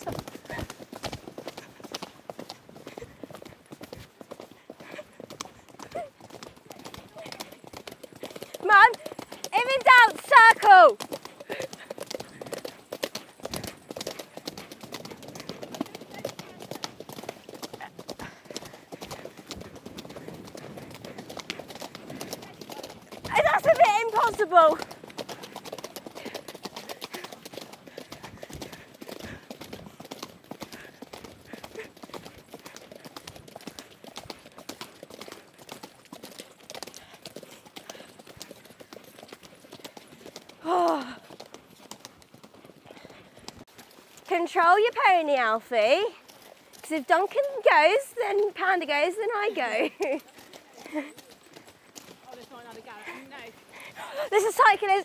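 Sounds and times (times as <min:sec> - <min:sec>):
hooves on gravel: 0:00.0 - 0:55.0.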